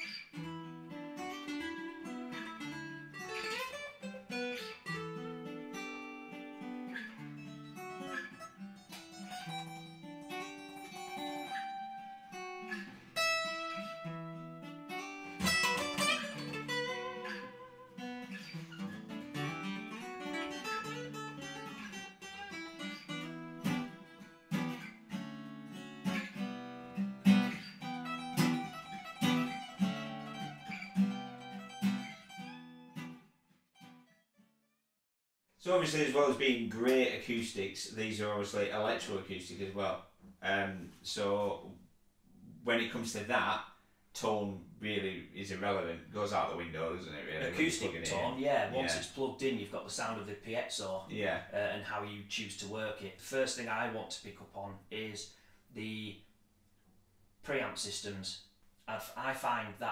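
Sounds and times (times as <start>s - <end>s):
acoustic guitar duet: 0.0s - 34.2s, 35.8s - 41.7s, 44.2s - 56.1s, 57.5s - 58.2s.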